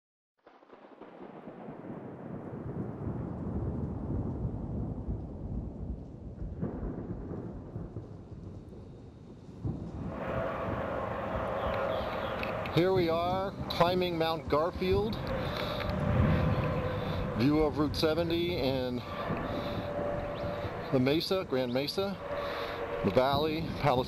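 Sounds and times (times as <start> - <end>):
low rumbling noise: 2.2 - 24.0.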